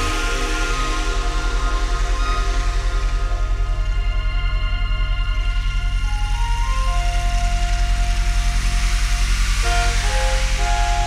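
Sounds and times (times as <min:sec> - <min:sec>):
hissy wash: 0:00.0 - 0:04.6, 0:05.3 - 0:11.0
pulsing bass drone: 0:00.0 - 0:11.0
synthesizer music: 0:00.0 - 0:11.0.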